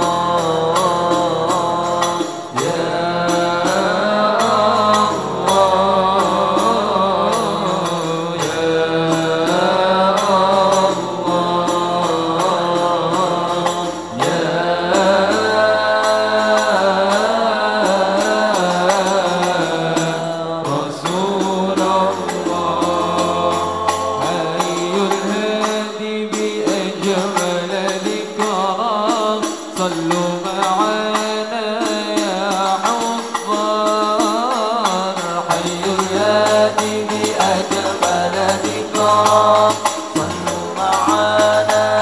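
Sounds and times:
hand-played frame drums: 0.0s - 42.0s
men singing devotional chant: 0.0s - 42.0s.

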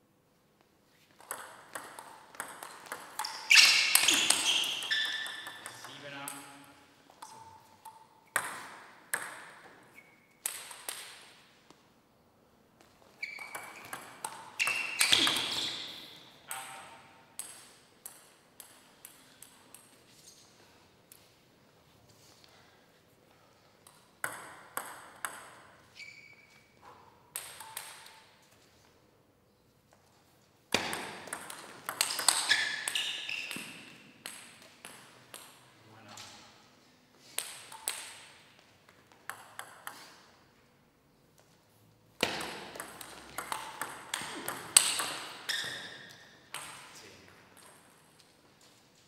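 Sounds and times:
table tennis ball hits: 1.1s - 11.4s, 13.4s - 15.9s, 16.5s - 19.9s, 23.8s - 26.0s, 26.8s - 28.4s, 30.7s - 35.7s, 37.3s - 40.3s, 42.2s - 48.1s.

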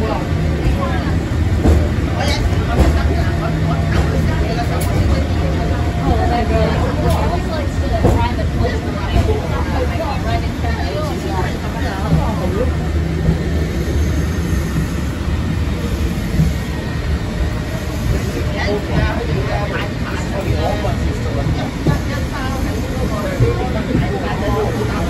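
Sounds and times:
people talking: 0.0s - 25.0s
tram car rumbling on track: 0.0s - 25.0s.

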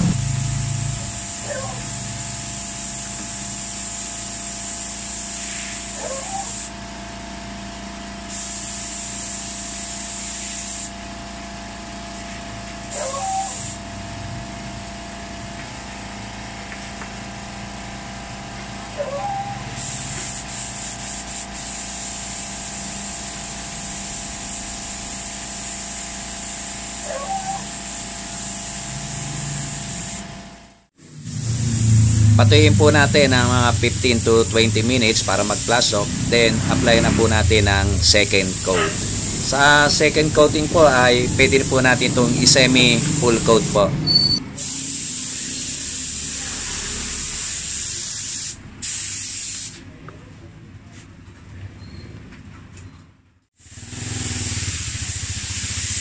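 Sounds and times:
steady low hum: 0.0s - 4.3s, 31.0s - 44.0s
spray gun hissing: 0.0s - 6.7s, 8.3s - 11.0s, 13.2s - 13.8s, 19.8s - 30.2s, 31.1s - 43.9s, 44.6s - 49.8s, 53.6s - 56.0s.

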